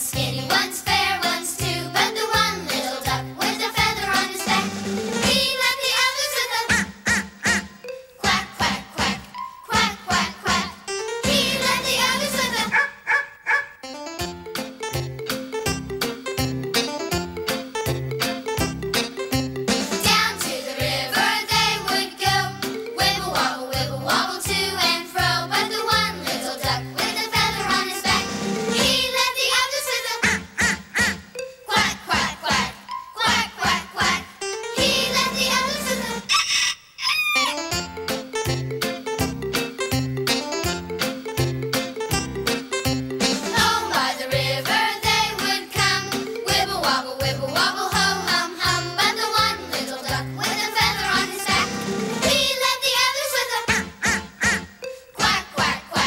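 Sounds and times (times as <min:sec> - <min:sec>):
accompanying music: 0:00.0 - 0:36.3, 0:37.5 - 0:56.0
children's song singing: 0:00.0 - 0:36.3, 0:41.7 - 0:56.0
bouncy band tune: 0:00.0 - 0:36.6, 0:37.4 - 0:56.0
short vocal calls: 0:36.3 - 0:37.6.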